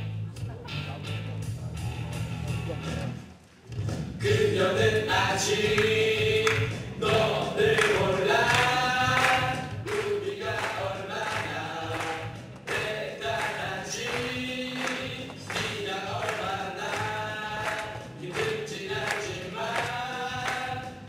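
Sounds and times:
backing music: 0.0 - 21.0
group of voices singing: 4.2 - 21.0.

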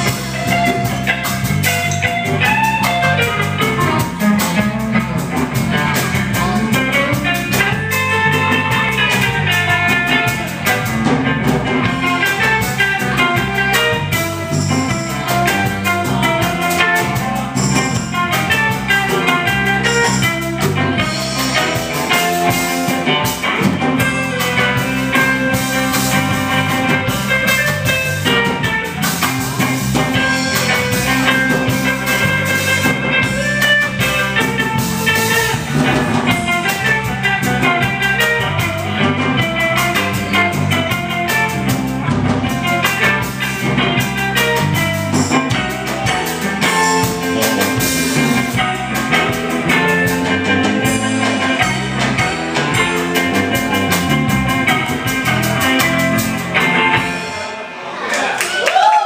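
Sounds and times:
lead guitar runs: 0.0 - 57.5
bass guitar: 0.0 - 57.8
drum kit: 0.0 - 57.8.

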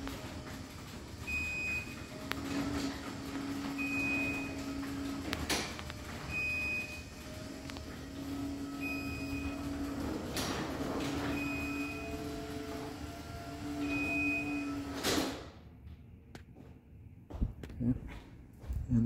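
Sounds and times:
garage door motor hum: 0.0 - 15.9.

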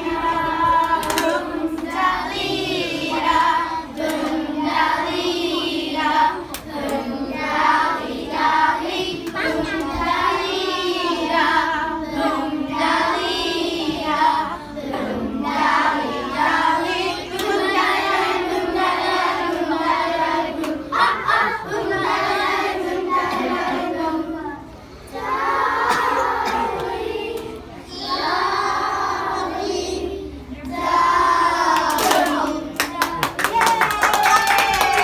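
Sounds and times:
children singing: 0.0 - 33.1.

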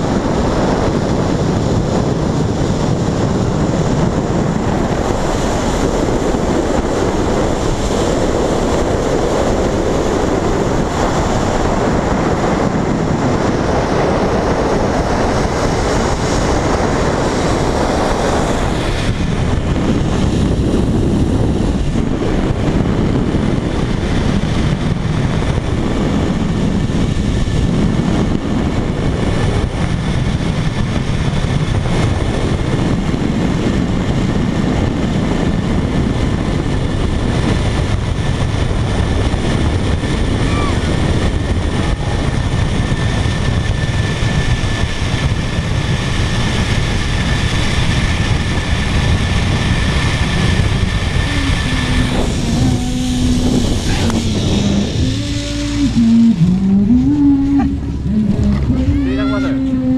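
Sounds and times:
high whine from pulleys: 0.0 - 59.9
wind rushing on microphone: 0.0 - 59.9
zipline trolley rolling on cable: 0.2 - 59.8.

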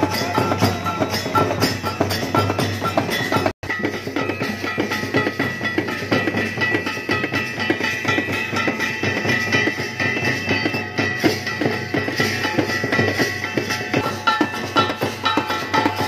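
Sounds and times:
drum beats: 0.0 - 16.0
small hand cymbals ringing: 0.0 - 16.0.

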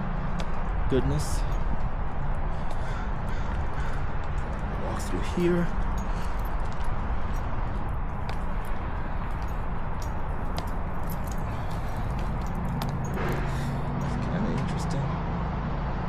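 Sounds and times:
footsteps on concrete: 0.2 - 14.0.

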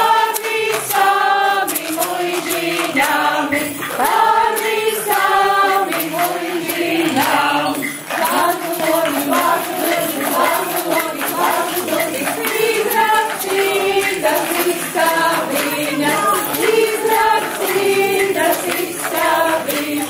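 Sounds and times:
group singing in unison: 0.0 - 20.0
light steady beat: 0.0 - 20.0.

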